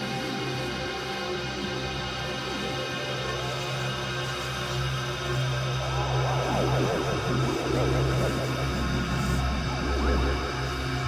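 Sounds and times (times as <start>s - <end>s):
droning synth chord: 0.0s - 11.0s
deep bass: 5.8s - 11.0s.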